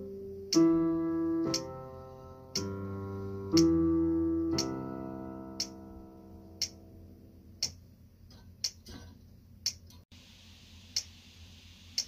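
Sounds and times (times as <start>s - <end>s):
keyboard chord: 0.0s - 7.3s
metronome ticking: 0.4s - 1.8s, 2.5s - 2.8s, 3.5s - 7.8s.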